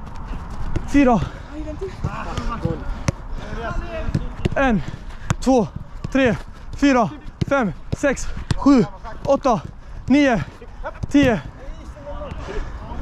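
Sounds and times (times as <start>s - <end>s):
footballs being kicked: 0.0s - 11.6s.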